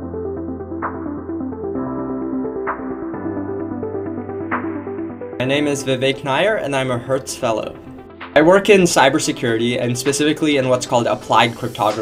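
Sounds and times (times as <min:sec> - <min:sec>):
electronic music with synth chords: 0:00.0 - 0:12.0.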